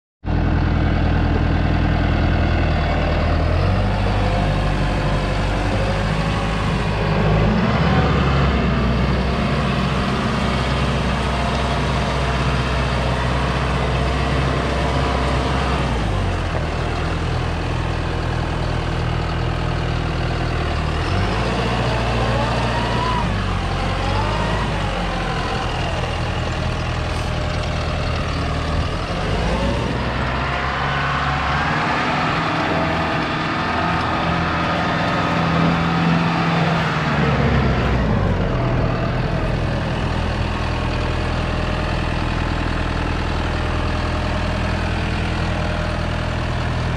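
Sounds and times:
tractor diesel engine running: 0.2 - 46.9.

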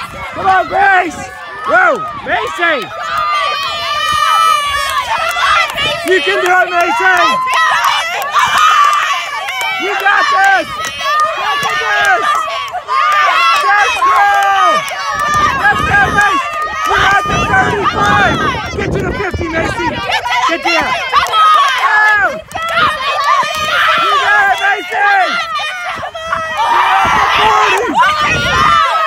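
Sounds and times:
girls shouting encouragement: 0.0 - 29.0.

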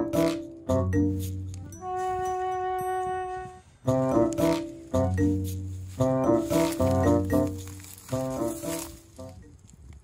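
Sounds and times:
music with short pitched notes: 0.0 - 9.5.

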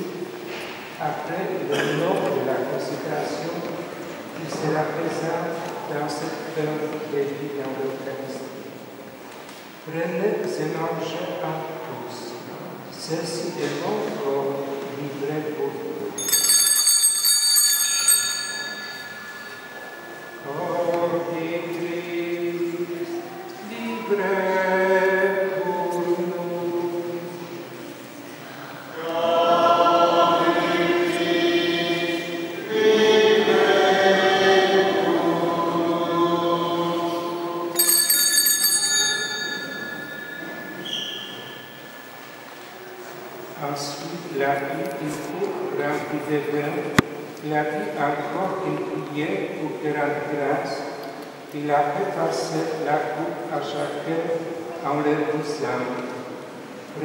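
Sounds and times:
altar bells ringing: 16.2 - 21.7, 37.4 - 42.4
choir singing held notes: 19.0 - 38.1, 39.4 - 43.6.

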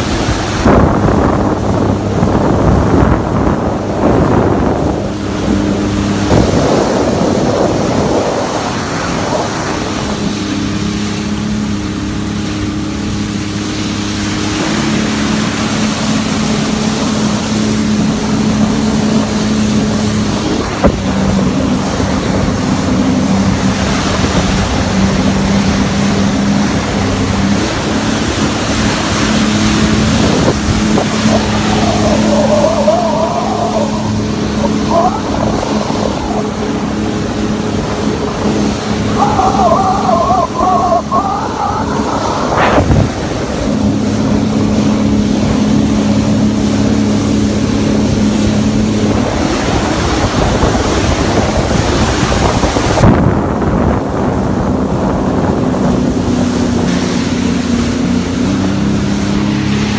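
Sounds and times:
jet ski engine droning: 0.0 - 59.9
rushing wind: 0.0 - 59.9.

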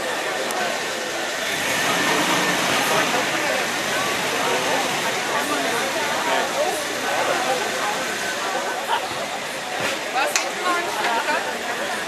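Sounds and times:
faint crowd chatter: 0.0 - 12.0.

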